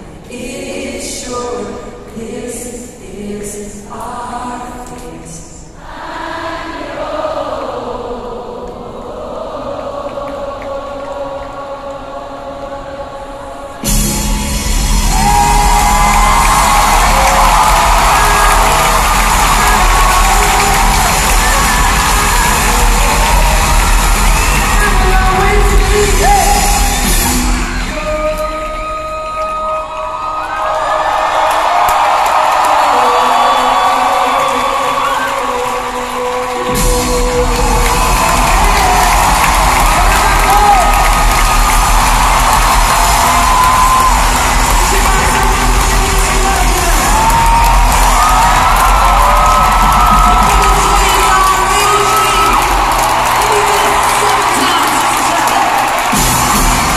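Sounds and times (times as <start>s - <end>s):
live band music: 13.8s - 28.8s, 36.7s - 56.9s
crowd cheering and whooping: 13.9s - 27.9s, 30.2s - 56.9s.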